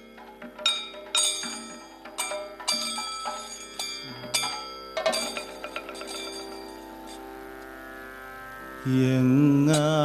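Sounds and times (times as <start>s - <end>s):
struck metal percussion ringing: 0.0s - 7.7s
drone of held tones: 2.8s - 10.0s.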